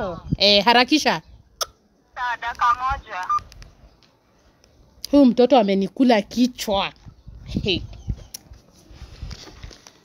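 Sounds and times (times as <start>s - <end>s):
voice through phone loudspeaker: 2.2s - 3.4s.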